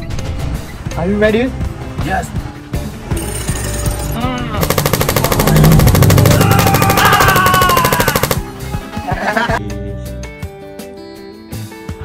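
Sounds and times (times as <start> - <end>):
background music: 0.0 - 12.0
automatic gunfire rattle: 4.6 - 8.5.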